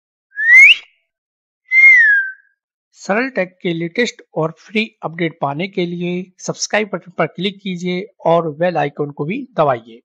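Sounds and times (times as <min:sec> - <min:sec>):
wolf whistle sound effect: 0:00.3 - 0:00.9, 0:01.7 - 0:02.5.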